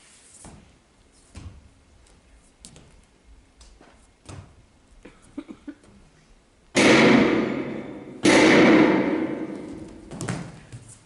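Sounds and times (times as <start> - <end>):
loud ringing hits: 6.8 - 10.1.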